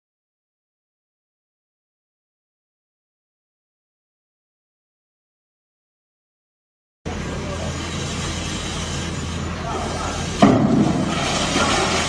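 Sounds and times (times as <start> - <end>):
worksite rumble and hum: 7.1 - 12.0.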